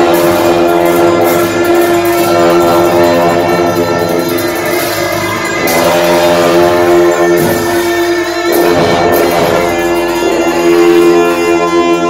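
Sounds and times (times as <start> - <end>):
drone of sustained tones: 0.0 - 12.0
large hand cymbals: 0.0 - 12.0.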